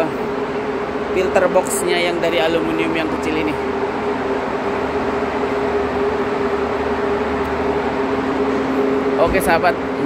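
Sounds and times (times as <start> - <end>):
ventilation fan humming: 0.0 - 10.0.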